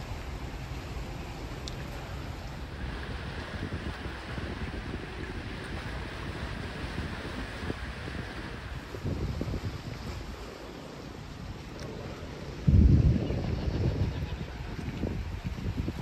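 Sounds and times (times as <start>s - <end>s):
wind buffeting microphone: 2.5s - 16.0s.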